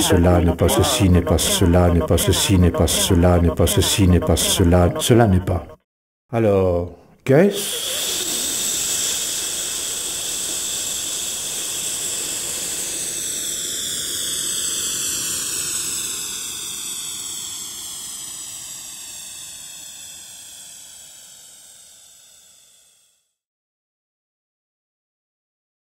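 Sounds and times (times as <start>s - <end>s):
electroacoustic noise with phasing sweep: 0.0s - 4.9s.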